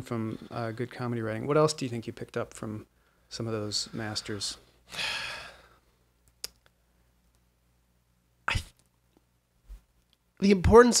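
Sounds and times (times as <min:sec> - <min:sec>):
mouth click: 0:06.2 - 0:07.4.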